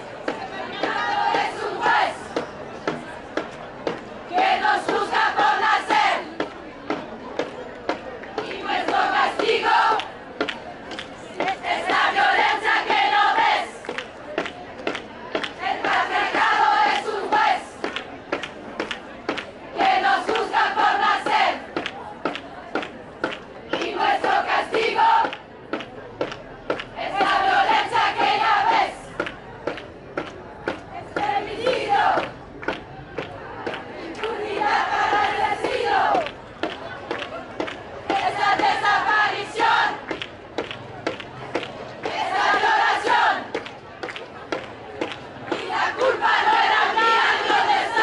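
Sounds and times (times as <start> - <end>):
women chanting together: 0.3 - 2.4, 4.3 - 6.4, 8.4 - 10.1, 11.4 - 13.9, 15.4 - 17.9, 19.8 - 21.7, 23.7 - 25.4, 27.0 - 29.3, 30.7 - 32.3, 33.4 - 36.4, 38.1 - 40.2, 42.0 - 43.6, 45.4 - 48.0
sharp hand claps: 13.8 - 19.6, 21.8 - 27.3, 29.2 - 38.8, 39.6 - 45.7.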